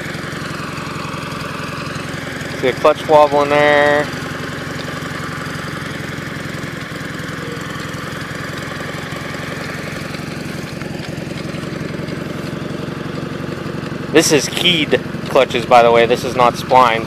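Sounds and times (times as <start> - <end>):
garden tractor engine running: 0.0 - 17.0.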